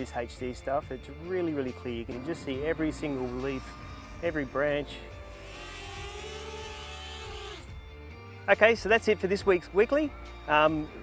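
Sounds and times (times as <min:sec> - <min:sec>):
quadcopter motors whirring: 0:02.1 - 0:07.8.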